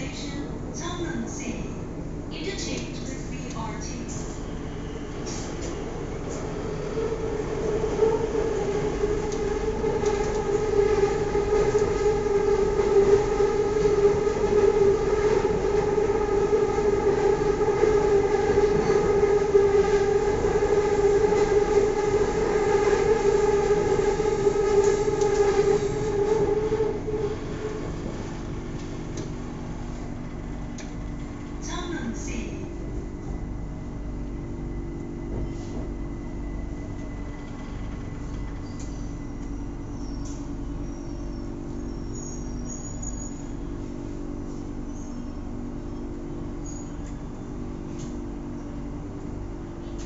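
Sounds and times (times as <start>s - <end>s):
train electric hum: 0.0s - 50.0s.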